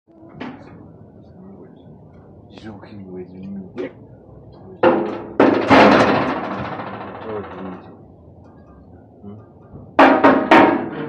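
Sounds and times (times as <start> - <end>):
low background murmur: 0.1 - 11.0
sheet-metal door clunk: 4.9 - 7.7.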